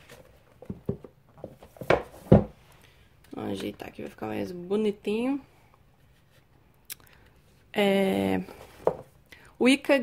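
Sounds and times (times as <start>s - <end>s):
books knocking on shelf: 0.6s - 2.6s, 8.8s - 9.1s.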